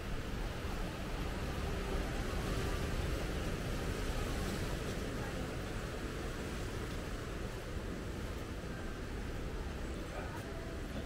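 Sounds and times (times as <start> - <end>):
sea surf: 0.0 - 11.0
wind rumble on microphone: 0.0 - 11.0.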